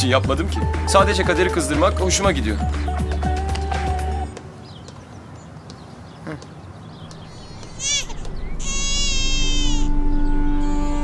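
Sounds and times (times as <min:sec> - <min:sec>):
newborn baby crying: 0:07.2 - 0:10.0, 0:10.6 - 0:11.0
held music notes: 0:07.5 - 0:11.0.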